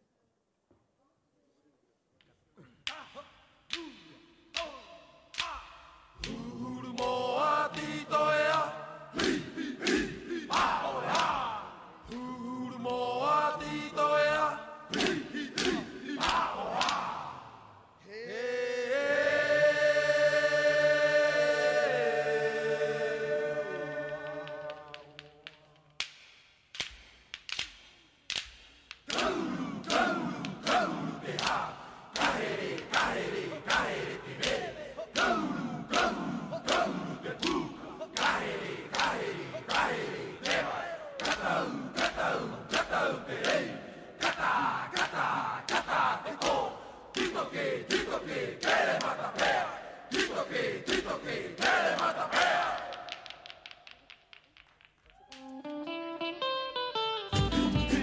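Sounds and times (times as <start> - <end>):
voices chanting and shouting: 2.6 - 26.0, 29.1 - 54.2.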